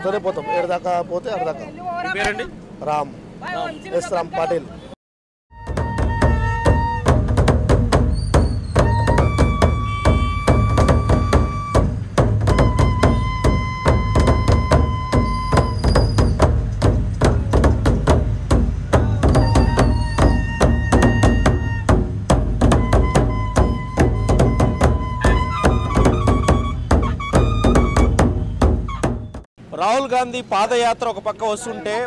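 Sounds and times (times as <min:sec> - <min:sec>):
barrel drums beaten: 0:05.5 - 0:29.5.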